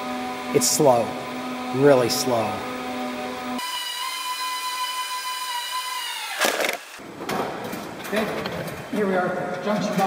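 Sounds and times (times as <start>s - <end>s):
electric motor whine: 0.0s - 7.0s.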